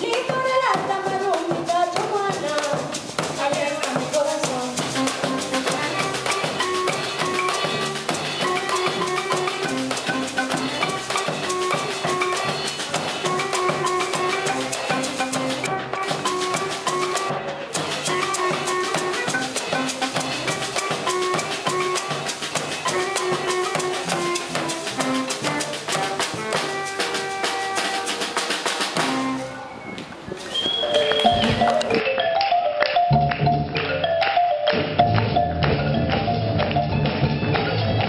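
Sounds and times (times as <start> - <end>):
cymbals and percussion: 0.0 - 38.0
bass drum beaten with sticks: 0.1 - 29.5
pitched instruments: 0.1 - 38.0
marimba repeated notes: 3.6 - 29.4, 30.8 - 38.0.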